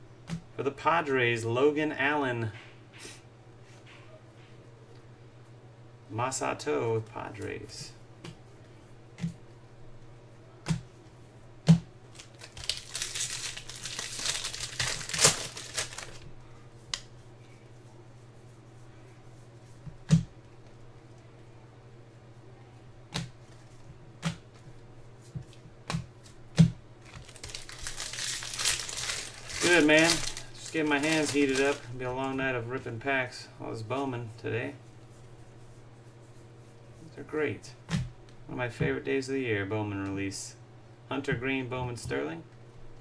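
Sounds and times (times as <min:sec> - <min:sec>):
trading cards flipping: 0:12.1 - 0:16.2, 0:27.0 - 0:31.8
card pack wrapper crinkling: 0:12.1 - 0:16.3, 0:27.0 - 0:32.0.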